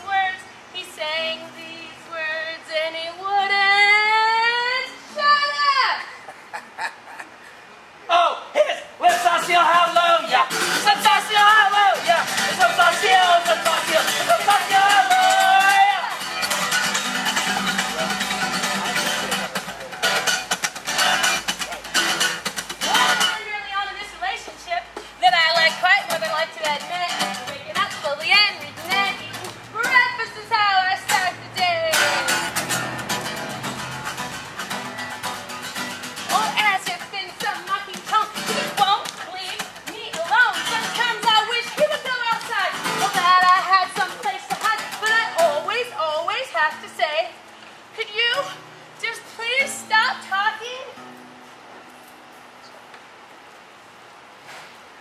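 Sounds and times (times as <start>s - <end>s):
voices singing: 8.1s - 20.3s
acoustic guitar strummed: 9.0s - 47.3s.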